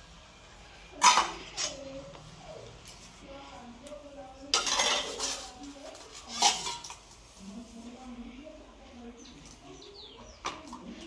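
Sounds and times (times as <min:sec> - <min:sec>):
metal utensil clank: 0:01.0 - 0:01.8, 0:04.5 - 0:05.6, 0:06.2 - 0:07.0
scrubbing and rattling dishes: 0:01.0 - 0:01.8, 0:04.5 - 0:07.2.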